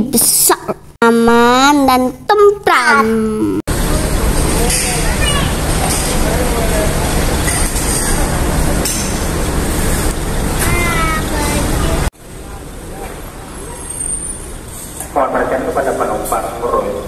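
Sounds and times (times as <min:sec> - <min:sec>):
coach engines running: 0:03.7 - 0:16.9.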